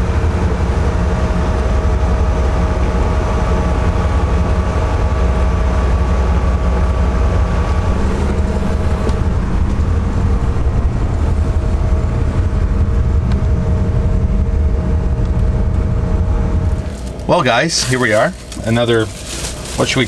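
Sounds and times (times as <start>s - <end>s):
low mechanical drone: 0.0s - 20.0s.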